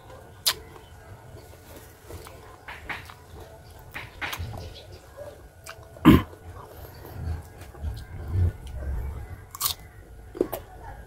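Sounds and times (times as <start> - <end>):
chewing: 0.1 - 10.8
crunchy bites: 9.5 - 10.7.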